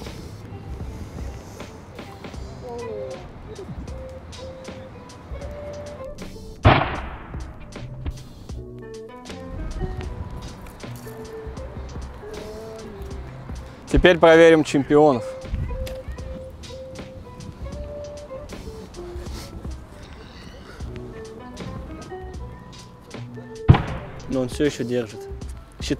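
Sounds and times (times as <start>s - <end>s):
background music melody: 0.0s - 25.9s.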